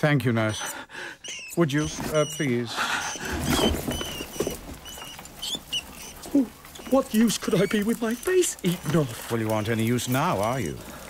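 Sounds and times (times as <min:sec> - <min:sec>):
rats squeaking: 0:00.4 - 0:10.7
rats scratching: 0:01.3 - 0:11.0.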